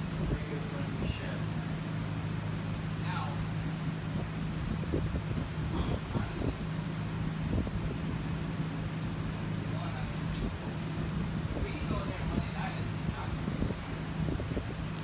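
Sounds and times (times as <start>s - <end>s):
amplifier electrical hum: 0.0s - 15.0s.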